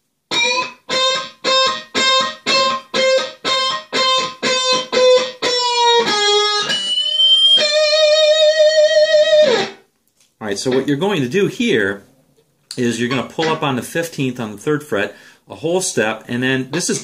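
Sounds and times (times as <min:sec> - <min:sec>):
electric guitar lead lick: 0:00.3 - 0:09.8, 0:13.1 - 0:13.8.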